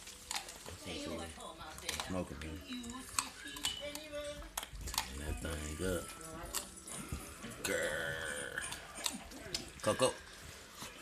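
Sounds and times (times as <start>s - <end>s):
teeth cracking on bone: 0.0s - 0.8s, 1.6s - 5.7s, 6.4s - 9.8s
puppies chewing and tearing: 0.0s - 11.0s.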